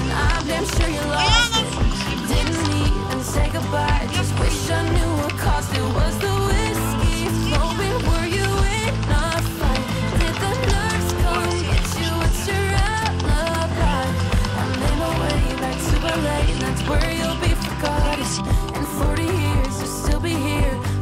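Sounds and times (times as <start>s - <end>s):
song with steady beat: 0.0s - 21.0s.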